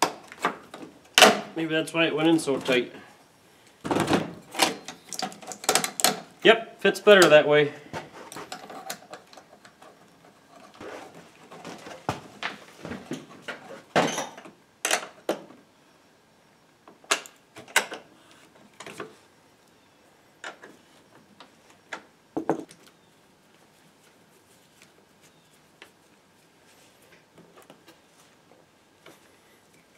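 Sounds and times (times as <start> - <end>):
clicks and knocks of parts: 3.8 - 6.3, 13.5 - 15.5.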